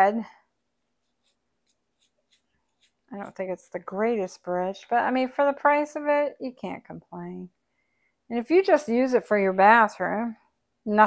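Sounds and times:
brush clicks and scratches: 0.9s - 4.2s.

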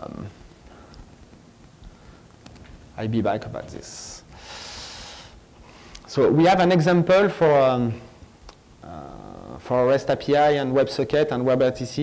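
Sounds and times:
person breathing: 4.3s - 6.1s.

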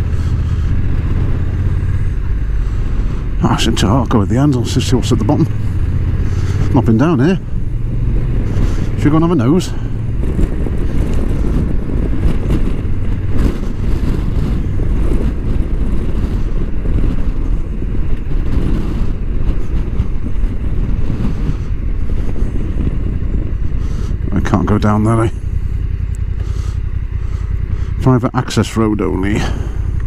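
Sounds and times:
motorcycle engine running: 0.0s - 30.0s
wind rumble on microphone: 0.0s - 30.0s.

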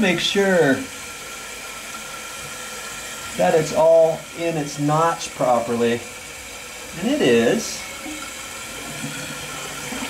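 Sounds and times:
water hissing into toilet tank: 0.0s - 10.0s.

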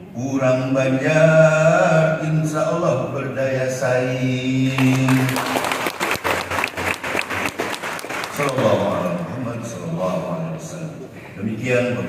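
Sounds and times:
audience applauding: 4.7s - 9.3s.

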